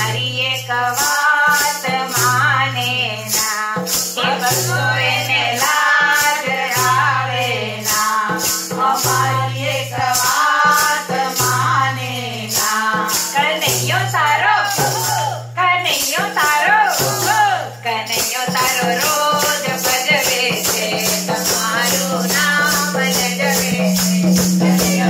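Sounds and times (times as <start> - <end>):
women singing in unison: 0.0 - 25.0
wooden clappers with jingles: 0.5 - 25.0.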